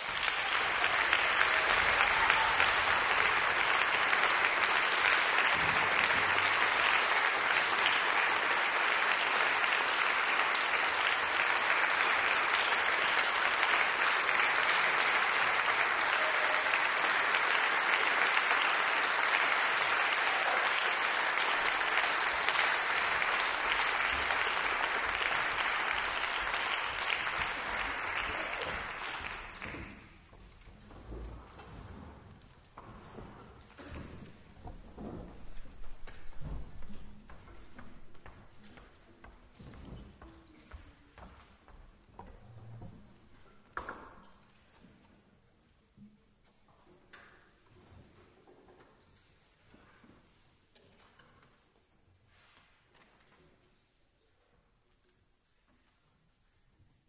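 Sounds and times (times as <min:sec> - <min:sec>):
audience applauding: 0:00.0 - 0:30.3.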